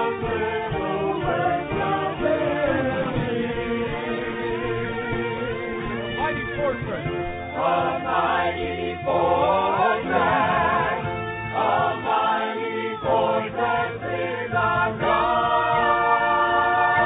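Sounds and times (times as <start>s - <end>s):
choir singing: 0.0s - 6.2s, 7.4s - 17.0s.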